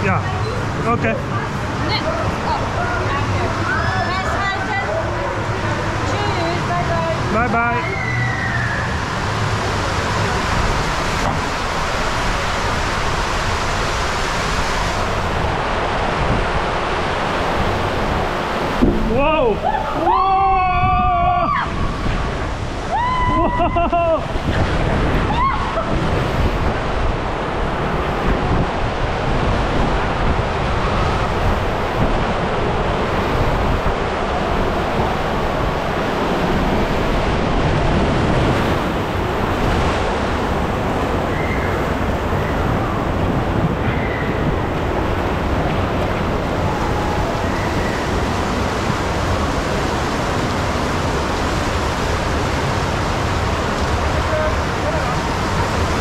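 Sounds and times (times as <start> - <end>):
water rushing around raft tube: 0.0 - 56.0.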